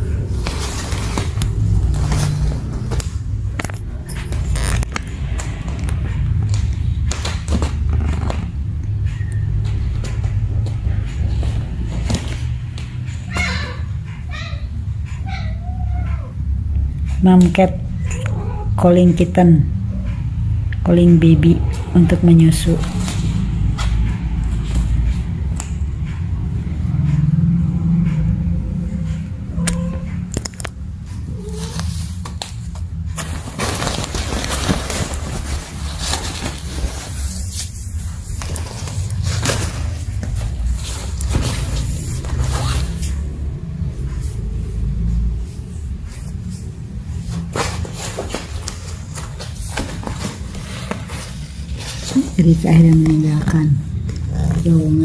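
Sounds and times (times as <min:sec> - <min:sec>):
nylon tunnel rustling and scraping: 0:00.0 - 0:03.3, 0:33.1 - 0:43.2
steady low rumble: 0:00.0 - 0:13.3, 0:16.3 - 0:55.0.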